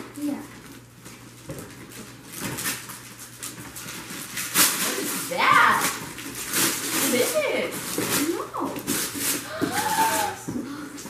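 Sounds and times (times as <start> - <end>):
paper rustling and crinkling: 0.7 - 10.5.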